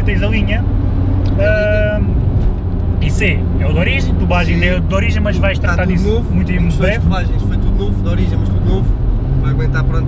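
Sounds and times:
engine and road drone: 0.0s - 10.0s.

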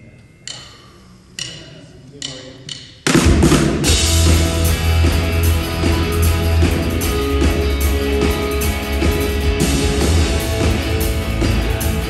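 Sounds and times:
drumstick clicks counting in: 0.4s - 3.0s
live rock band playing: 3.2s - 12.0s.

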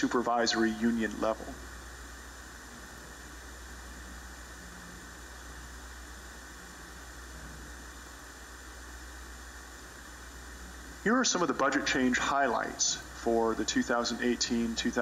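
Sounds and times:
background hiss: 0.0s - 15.0s
low electrical hum: 0.0s - 15.0s.

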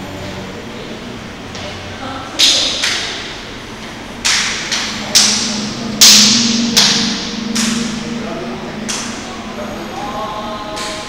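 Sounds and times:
low steady hum: 0.0s - 11.0s
sharp noisy electronic hits: 4.0s - 10.0s.

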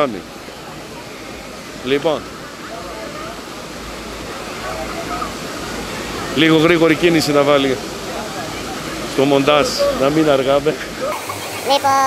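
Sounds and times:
faint voices: 0.0s - 12.0s
waterfall rushing into pool: 0.0s - 12.0s.

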